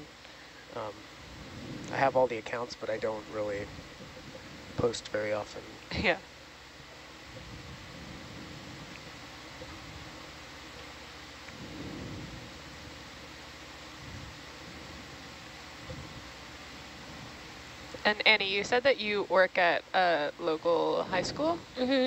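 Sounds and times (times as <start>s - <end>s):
room noise hiss and hum: 0.0s - 22.0s.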